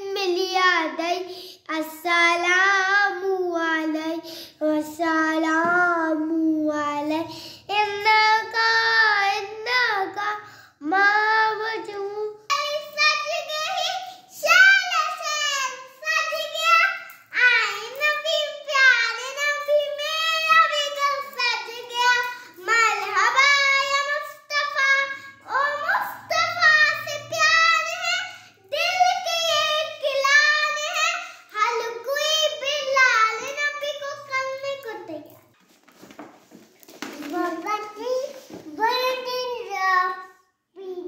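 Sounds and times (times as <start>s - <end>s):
girl singing unaccompanied: 0.0s - 35.2s.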